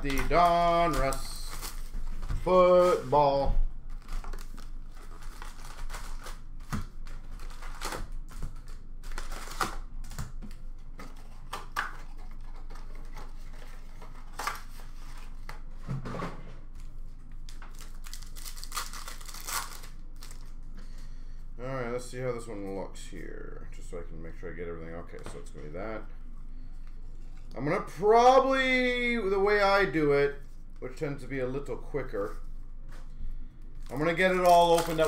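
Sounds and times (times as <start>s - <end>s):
wrapped card packs crinkling: 0.0s - 10.4s, 17.4s - 20.7s, 33.7s - 35.0s.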